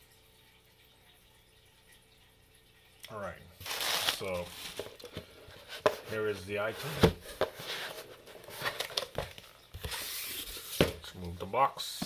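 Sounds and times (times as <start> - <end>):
paper and cardboard rustling: 3.6 - 11.3.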